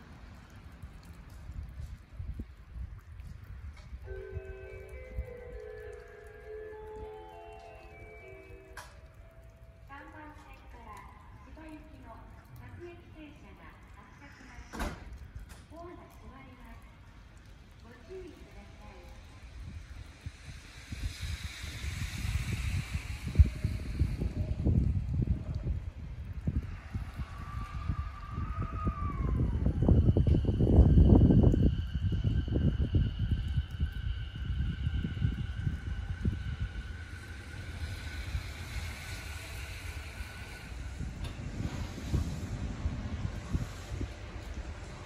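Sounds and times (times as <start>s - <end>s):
wind buffeting microphone: 0.0s - 14.1s, 14.9s - 45.0s
train running rumble: 18.0s - 45.0s
electric train motor whine: 19.4s - 45.0s.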